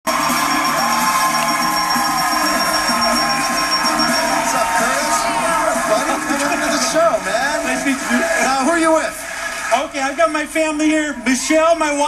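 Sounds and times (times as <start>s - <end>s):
audience cheering and clapping: 0.1s - 12.0s
upbeat game show music: 0.1s - 12.0s.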